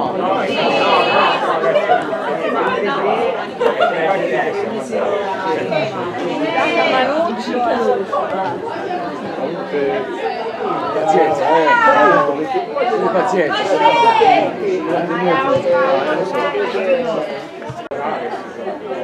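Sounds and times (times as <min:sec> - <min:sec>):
overlapping voices chattering: 0:00.0 - 0:19.0.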